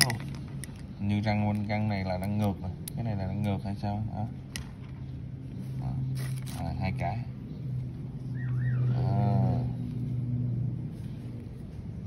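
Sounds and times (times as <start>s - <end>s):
steady low hum: 0.0s - 12.0s
wavering high chirp: 8.2s - 9.3s.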